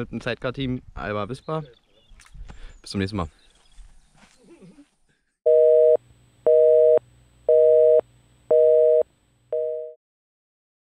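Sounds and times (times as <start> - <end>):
telephone busy signal: 5.5 - 10.0.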